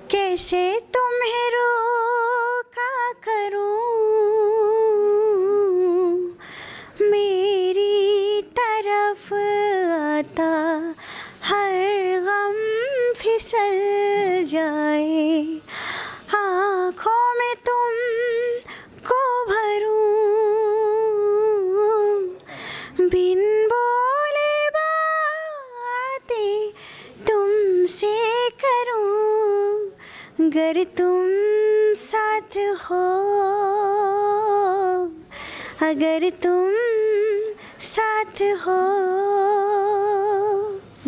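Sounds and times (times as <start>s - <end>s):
woman singing with vibrato: 0.0s - 41.0s
singer breathing: 6.4s - 7.0s, 11.0s - 11.4s, 15.6s - 16.3s, 18.6s - 19.0s, 22.4s - 23.0s, 26.8s - 27.2s, 30.0s - 30.4s, 35.2s - 35.8s, 37.6s - 37.8s.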